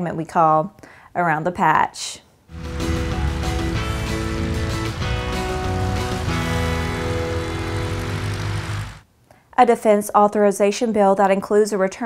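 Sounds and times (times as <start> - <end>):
music sting with sustained chords: 2.5 - 9.0.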